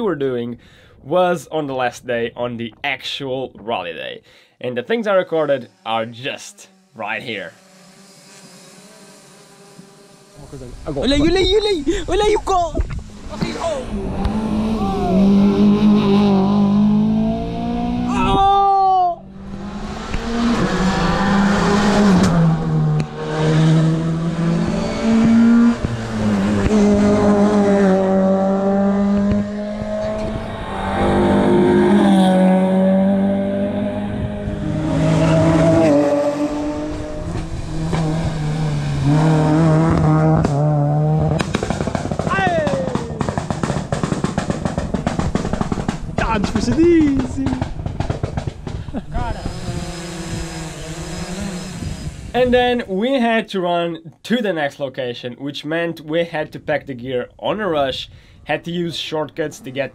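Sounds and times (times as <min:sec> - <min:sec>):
rally car engines revving: 0:05.5 - 0:18.4, 0:19.2 - 0:52.7.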